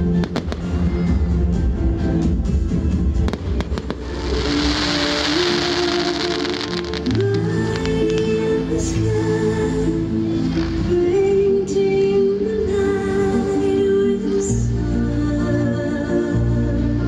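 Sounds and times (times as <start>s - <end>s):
music with long held notes: 0.0s - 17.0s
fireworks bangs: 3.2s - 8.2s
fireworks hissing rush: 3.3s - 8.2s.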